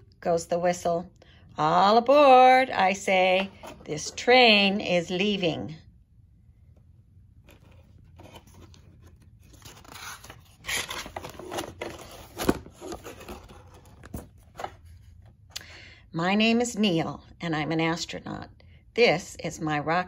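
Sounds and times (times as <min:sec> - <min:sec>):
book pages rustling: 0:07.3 - 0:15.4.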